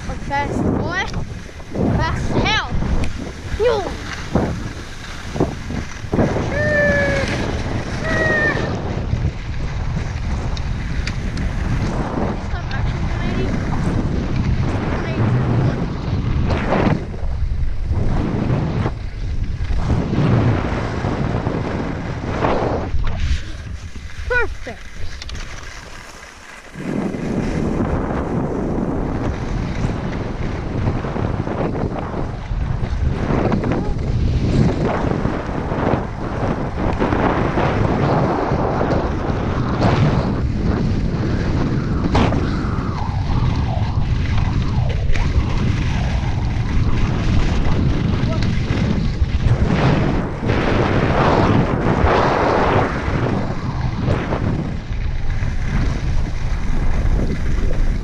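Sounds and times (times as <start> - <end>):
skis scraping over snow: 0.0 - 58.0
wind buffeting microphone: 0.0 - 58.0
person calling out: 6.5 - 7.4, 8.0 - 8.8, 24.3 - 24.9.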